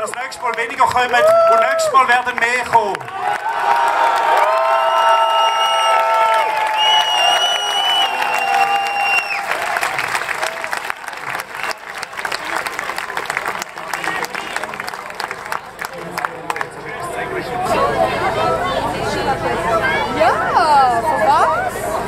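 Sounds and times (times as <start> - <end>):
crowd applauding and cheering: 0.0 - 18.6.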